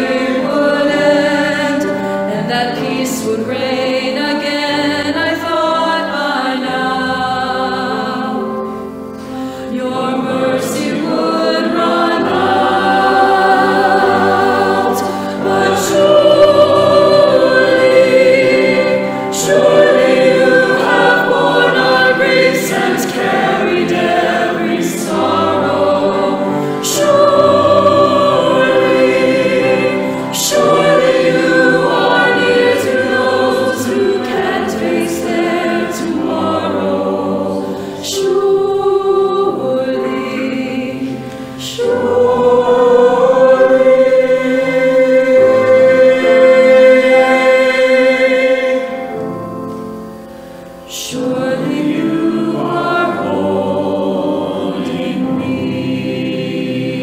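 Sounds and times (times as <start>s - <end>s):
choir singing in harmony: 0.0s - 57.0s.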